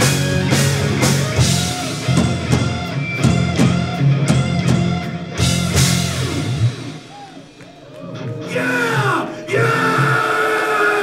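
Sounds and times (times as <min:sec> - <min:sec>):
rock band final chord: 0:00.0 - 0:07.1.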